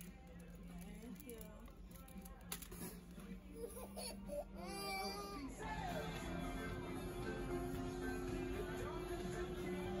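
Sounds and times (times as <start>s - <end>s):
toddler crying: 3.6s - 5.6s.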